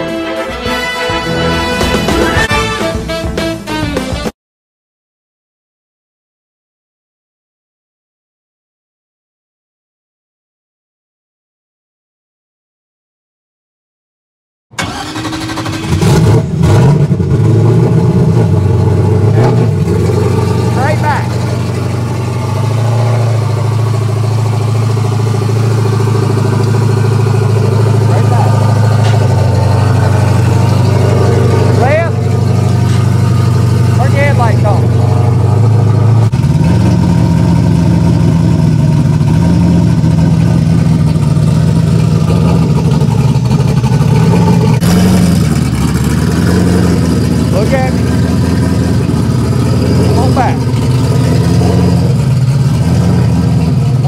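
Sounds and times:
race car engine idling: 14.8s - 54.0s.

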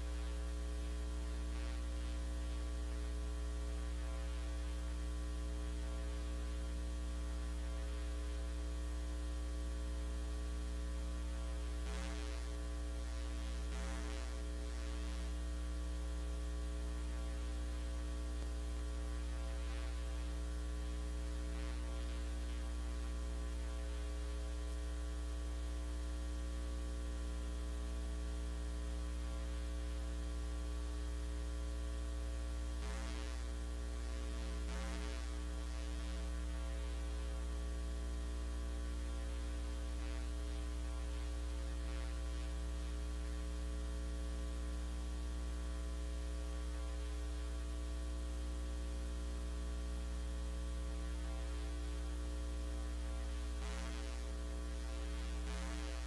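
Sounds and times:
electrical mains hum: 0.0s - 56.0s.

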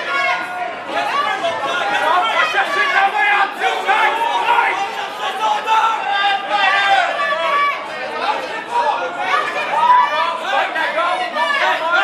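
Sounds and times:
crowd yelling: 0.0s - 12.0s.

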